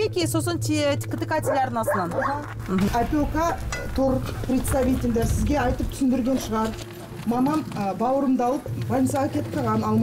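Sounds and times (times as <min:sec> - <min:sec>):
dog barking and yelping: 0:01.4 - 0:02.4.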